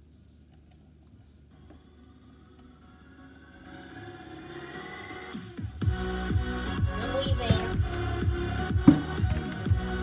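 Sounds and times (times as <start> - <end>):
electronic music with heavy beat: 4.6 - 10.0.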